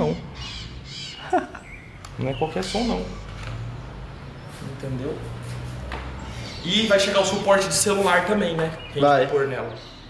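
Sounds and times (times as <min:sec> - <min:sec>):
bird giving harsh calls: 0:00.0 - 0:03.3, 0:06.2 - 0:08.1.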